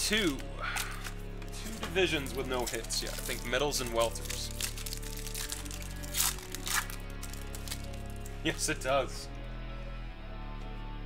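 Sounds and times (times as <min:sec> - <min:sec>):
background music: 0:00.0 - 0:11.0
plastic wrapper crinkling: 0:00.1 - 0:08.3.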